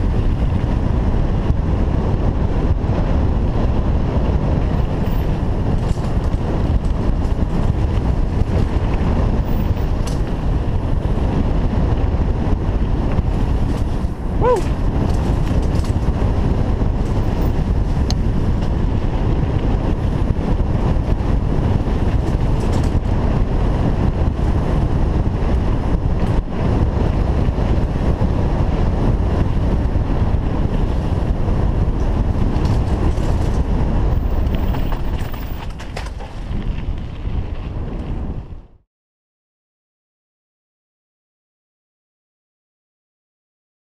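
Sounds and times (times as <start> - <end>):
bike rattling: 0.0 - 38.6
wind buffeting microphone: 0.0 - 38.8
tyre rumble: 4.3 - 26.8, 30.2 - 38.6.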